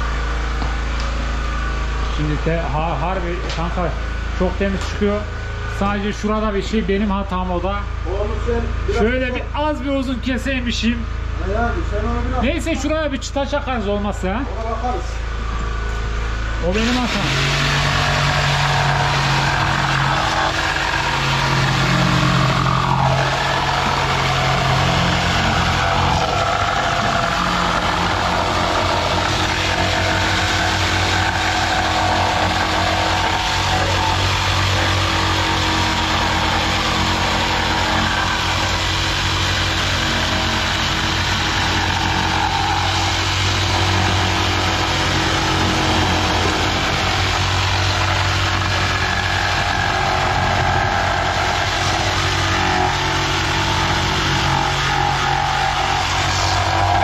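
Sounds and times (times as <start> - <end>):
electric jigsaw cutting wood: 16.6 - 57.0.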